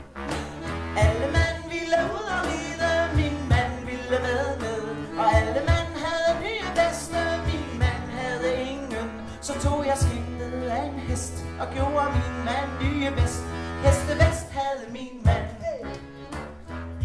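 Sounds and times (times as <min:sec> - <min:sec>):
accordion: 0:00.0 - 0:17.0.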